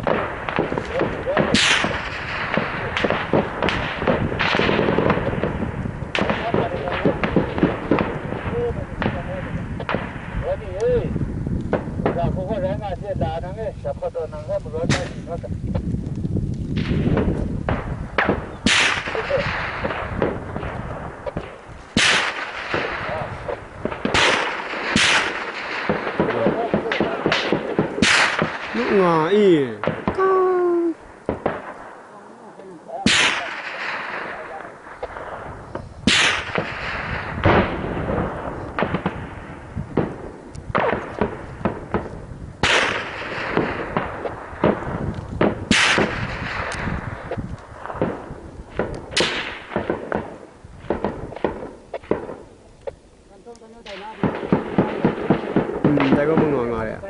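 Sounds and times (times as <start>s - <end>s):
gunshots and bursts: 0.0s - 10.3s, 16.8s - 29.2s, 33.1s - 52.4s, 53.9s - 56.6s
loud echoing blasts: 0.0s - 53.0s, 53.8s - 57.0s.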